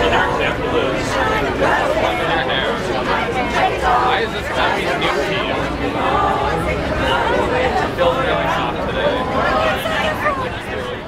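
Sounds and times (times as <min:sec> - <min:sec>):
teenagers chattering: 0:00.0 - 0:11.0.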